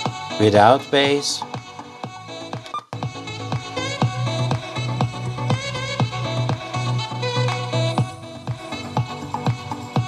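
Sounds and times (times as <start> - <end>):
music with steady beat: 0.0 - 0.4, 1.4 - 10.0
button press click: 2.7 - 2.9.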